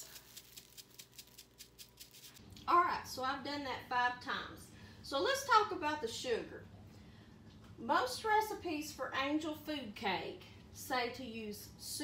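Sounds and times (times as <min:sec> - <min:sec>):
mesh sieve ticking and rattling: 0:00.0 - 0:02.4.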